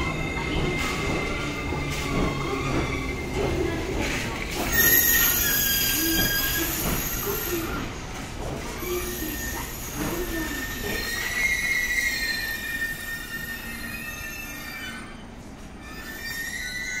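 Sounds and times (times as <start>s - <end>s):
train braking: 0.0s - 17.0s
high-pitched brake squeal: 4.6s - 7.8s, 8.8s - 15.2s, 15.8s - 17.0s.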